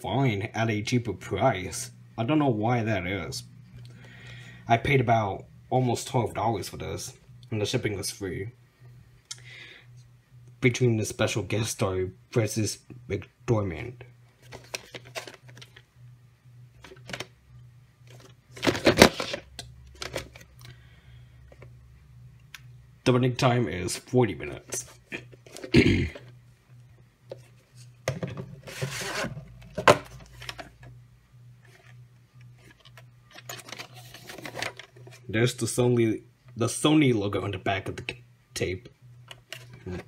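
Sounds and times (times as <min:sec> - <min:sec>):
plastic tape case clicks and rustles: 0:14.4 - 0:15.8, 0:16.8 - 0:17.3, 0:18.1 - 0:20.7, 0:32.6 - 0:35.2.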